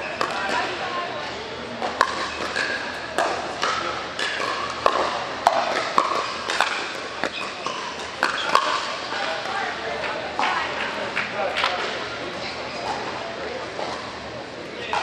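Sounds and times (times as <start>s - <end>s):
pickleball paddles hitting ball: 0.1s - 0.8s, 1.8s - 12.0s.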